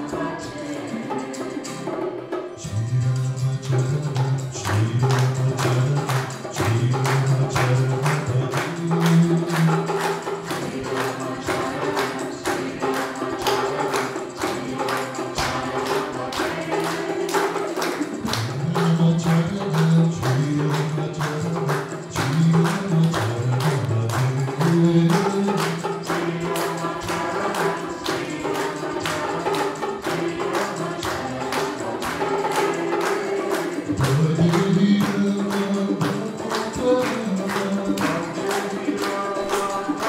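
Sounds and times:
person singing devotional song: 0:00.0 - 0:40.0
tambourine beat: 0:00.0 - 0:40.0.

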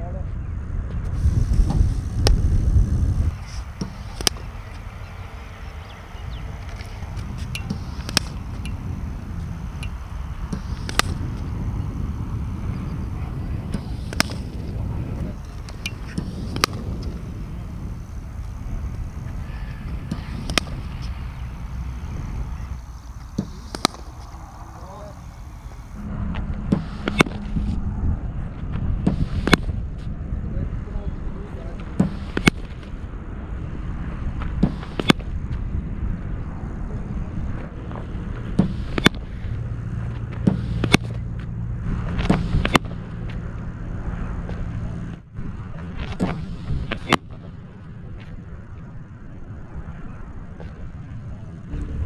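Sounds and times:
steady low rumble: 0:00.0 - 0:52.0
cricket ball striking bat: 0:03.8 - 0:04.7, 0:07.3 - 0:11.5, 0:13.6 - 0:24.6, 0:26.7 - 0:27.7, 0:32.0 - 0:32.7, 0:34.6 - 0:35.3, 0:38.5 - 0:39.3, 0:40.4 - 0:41.2, 0:42.2 - 0:43.0.

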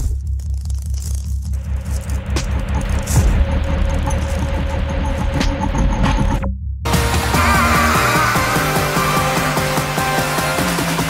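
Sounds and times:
deep rumbling bass: 0:00.0 - 0:09.7.

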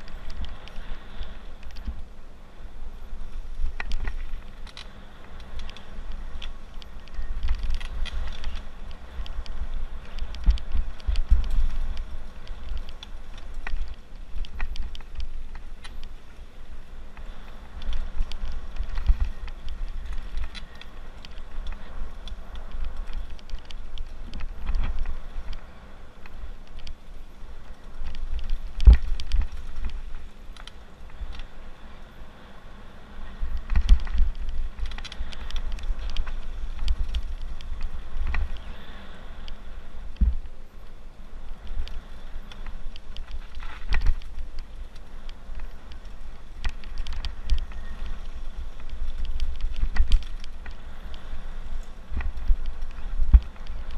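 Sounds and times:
bike clicking and rattling: 0:00.0 - 0:53.9
tyres on dirt and gravel: 0:00.0 - 0:53.9
wind buffeting microphone: 0:00.0 - 0:53.9.

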